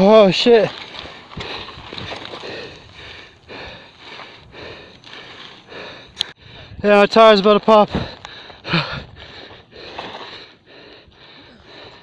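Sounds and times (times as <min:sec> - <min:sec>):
hard rapid breathing: 0:01.0 - 0:06.9, 0:07.8 - 0:12.0.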